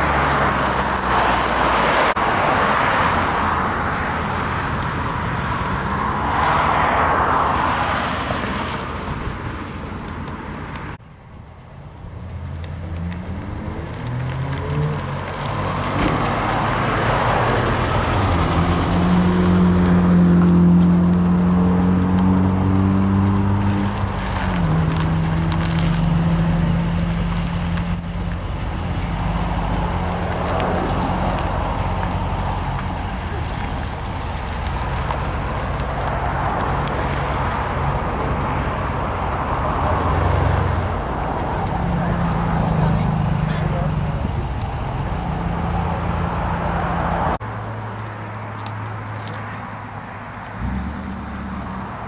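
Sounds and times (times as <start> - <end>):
car engines at low speed: 0.0 - 52.0.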